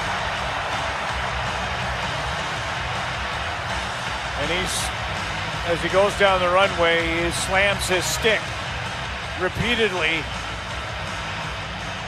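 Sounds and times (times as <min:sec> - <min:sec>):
crowd din: 0:00.0 - 0:07.8
arena music with pulsing beat: 0:00.0 - 0:12.0.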